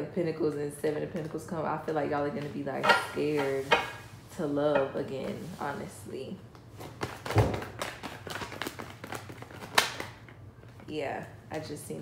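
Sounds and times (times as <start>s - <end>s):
cards being shuffled: 6.8s - 10.8s.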